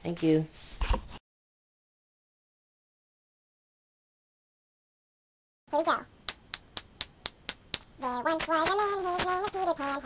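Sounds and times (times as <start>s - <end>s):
finger snaps: 6.3s - 7.9s.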